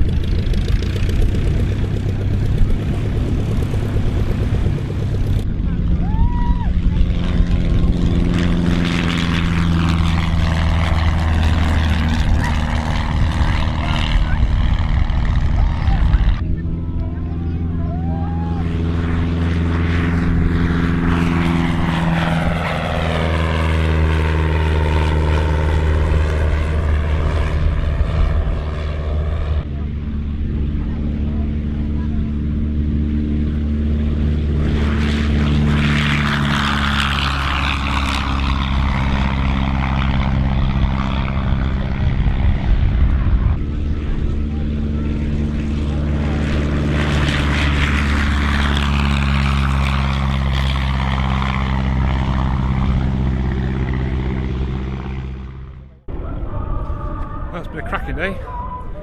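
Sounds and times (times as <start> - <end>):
propeller aircraft engine drone: 0.0 - 59.0.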